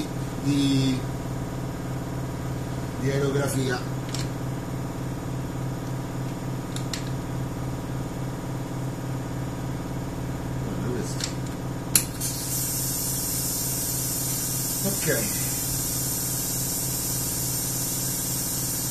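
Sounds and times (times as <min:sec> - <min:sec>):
low machinery hum: 0:00.0 - 0:18.9
compressed air hissing: 0:12.1 - 0:18.9.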